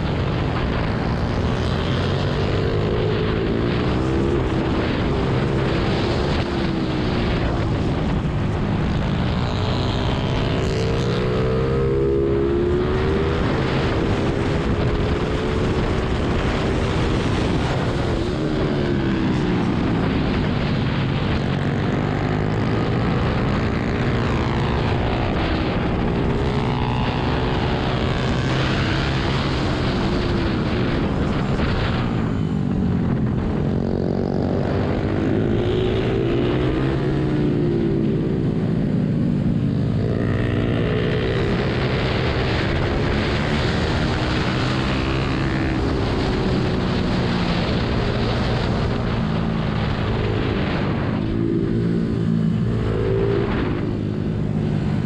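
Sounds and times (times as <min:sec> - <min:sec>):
wind on microphone: 0:00.0 - 0:55.0.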